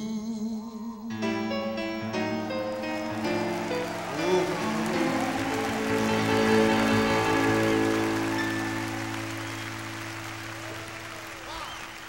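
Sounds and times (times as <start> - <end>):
audience whistles and cheers: 2.1 - 12.0.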